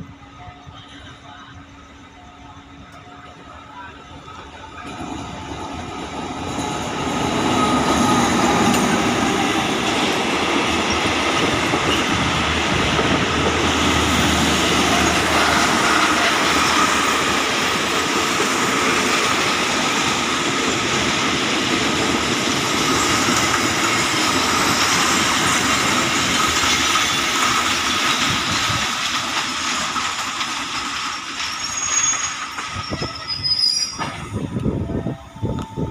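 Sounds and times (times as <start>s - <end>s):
train wheels rattling and squealing: 0.0s - 35.9s.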